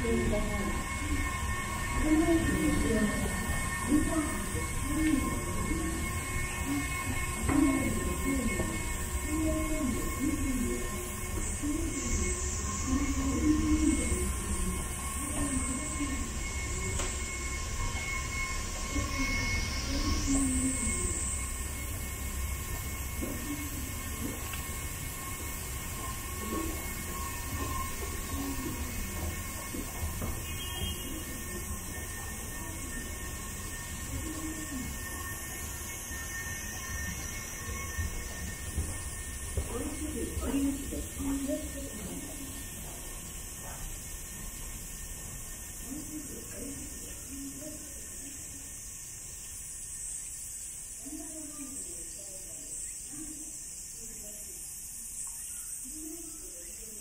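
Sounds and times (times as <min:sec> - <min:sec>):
escalator mechanical hum: 0:00.0 - 0:57.0
faint steady whine: 0:00.0 - 0:57.0.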